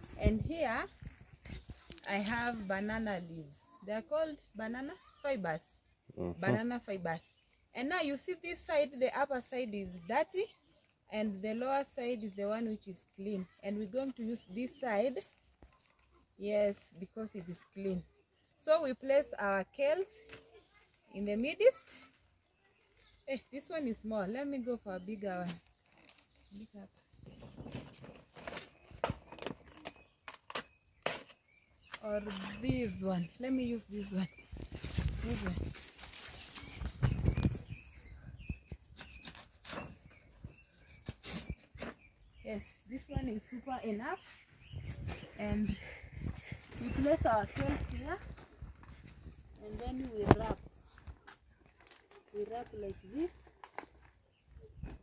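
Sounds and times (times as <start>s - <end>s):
leaves rustling and crackling: 33.7s - 37.8s, 46.5s - 54.0s.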